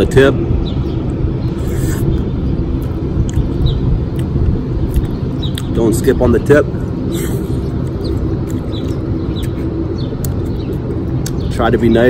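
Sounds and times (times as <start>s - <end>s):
low outdoor rumble: 0.0s - 12.0s
small bird chirping: 0.6s - 6.2s, 7.1s - 12.0s.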